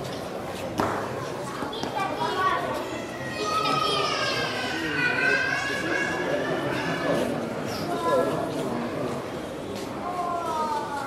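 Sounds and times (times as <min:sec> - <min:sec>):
murmur of visitors' voices: 0:00.0 - 0:11.0.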